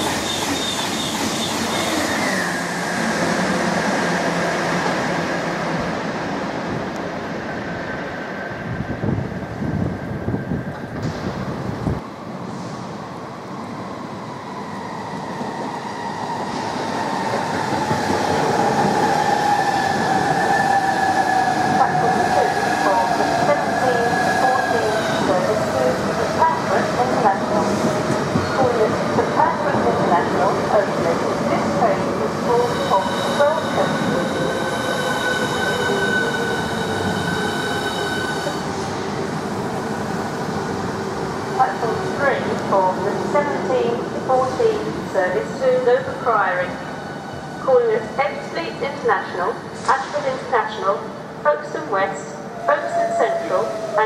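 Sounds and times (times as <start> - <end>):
high brake squeals: 0.1 - 2.6.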